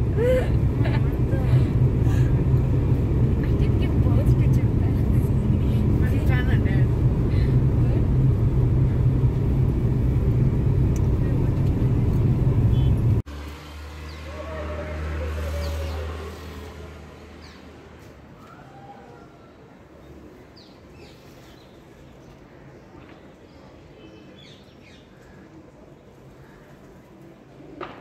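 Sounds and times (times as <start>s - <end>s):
car cabin road and engine noise: 0.0s - 14.2s.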